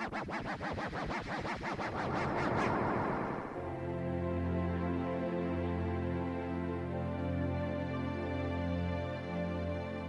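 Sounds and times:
turntable scratching: 0.0 - 3.7
electronic music: 0.0 - 4.6.

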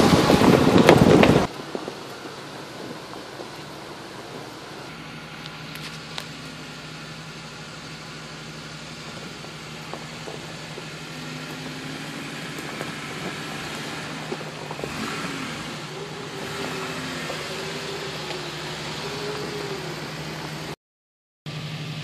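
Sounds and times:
engine running at low revs: 0.0 - 20.8, 21.5 - 22.0.

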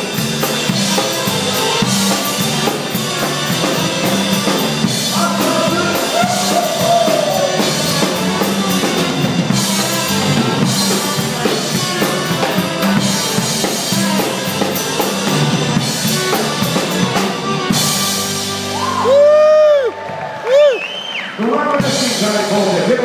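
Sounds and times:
live band playing: 0.0 - 23.0
high pitched rising calls: 1.1 - 19.9.

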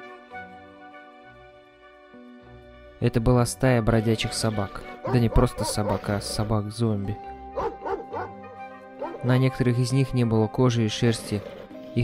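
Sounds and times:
dogs barking: 4.9 - 6.6, 7.5 - 9.4.

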